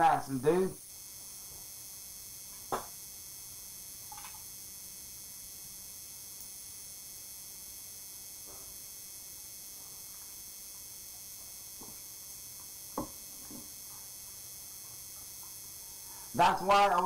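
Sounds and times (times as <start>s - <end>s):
steady recording hiss: 0.0s - 17.0s.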